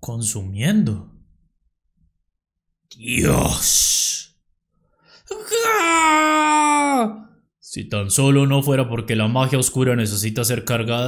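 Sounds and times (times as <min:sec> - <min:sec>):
man wailing in pain: 0:05.3 - 0:07.1.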